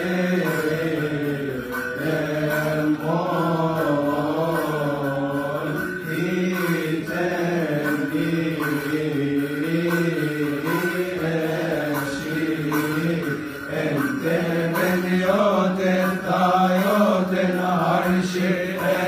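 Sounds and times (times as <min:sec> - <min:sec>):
men chanting: 0:00.0 - 0:19.0.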